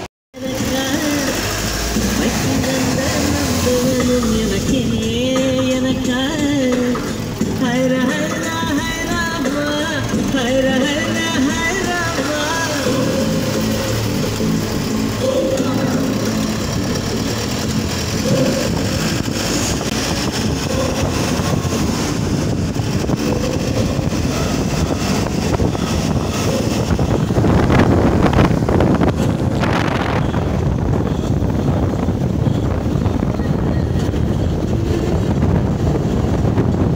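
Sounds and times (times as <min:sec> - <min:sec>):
wind on microphone: 0:16.9 - 0:36.9.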